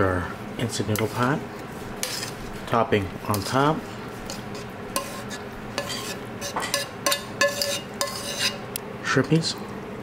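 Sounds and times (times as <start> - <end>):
metal tongs scraping a pan: 2.0 - 2.4, 3.3 - 8.7.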